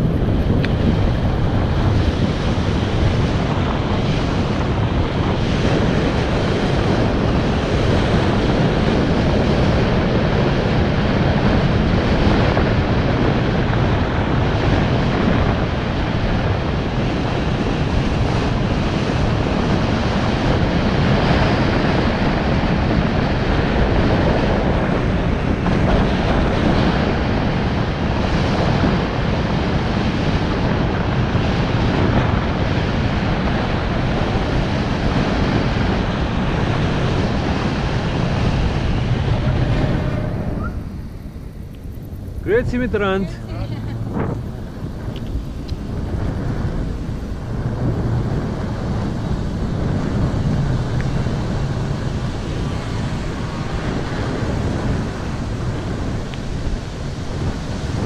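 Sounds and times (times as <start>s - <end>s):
wind noise on microphone: 0.0s - 58.0s.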